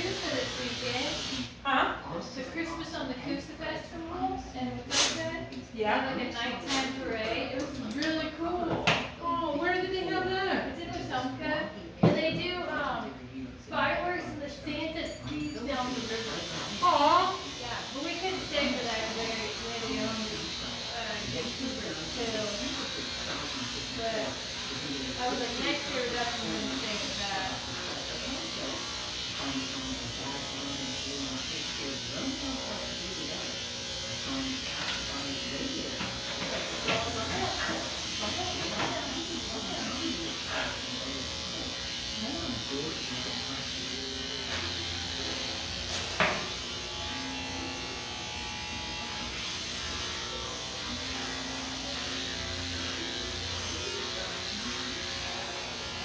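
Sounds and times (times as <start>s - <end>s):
electric clippers running: 0.0s - 1.7s, 15.0s - 56.0s.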